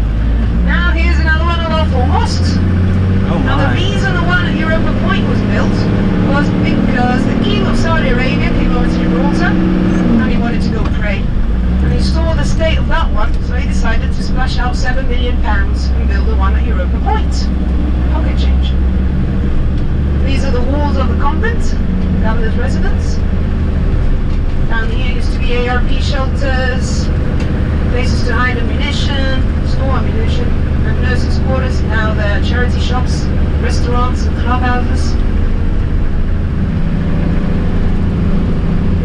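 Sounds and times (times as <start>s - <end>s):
indistinct voices talking: 0.0s - 35.2s
minibus engine and road rumble: 0.0s - 39.0s.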